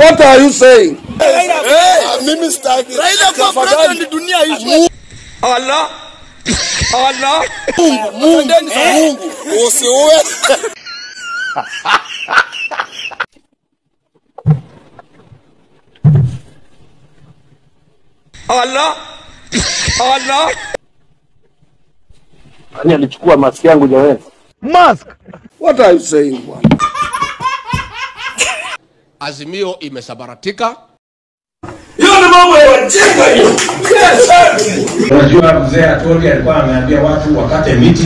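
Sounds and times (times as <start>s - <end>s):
man laughing with high squeals: 8.9s - 13.3s.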